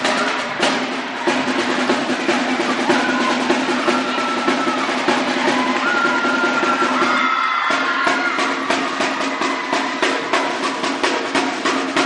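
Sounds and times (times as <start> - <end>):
marching snare drums: 0.0 - 12.0.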